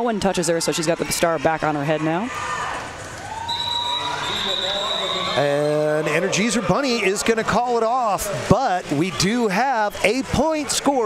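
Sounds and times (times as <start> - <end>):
arena crowd noise: 0.0 - 11.0
referee's whistle long note: 3.5 - 5.8.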